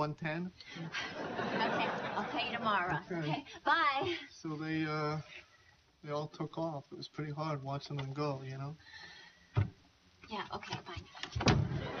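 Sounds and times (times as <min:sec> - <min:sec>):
voices: 0:01.2 - 0:04.2
door shutting with thump: 0:09.5 - 0:09.8, 0:11.2 - 0:12.0.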